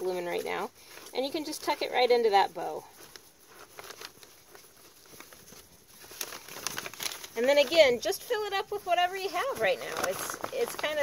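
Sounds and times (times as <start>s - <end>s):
flower stems rustling: 0.0s - 11.0s
paper bag rustling: 0.0s - 11.0s.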